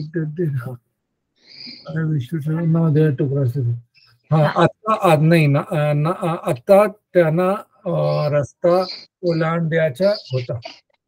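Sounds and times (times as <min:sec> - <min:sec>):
person speaking over call: 0:00.0 - 0:00.8, 0:01.6 - 0:10.8.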